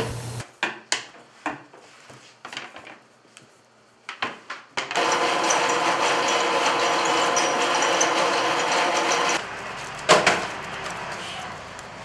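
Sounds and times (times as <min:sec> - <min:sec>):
electric machine motor running: 0:05.0 - 0:09.5.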